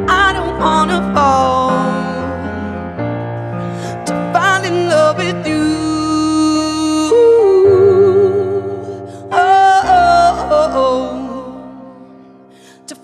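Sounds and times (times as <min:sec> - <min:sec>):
woman singing wordless notes: 0:04.3 - 0:12.0.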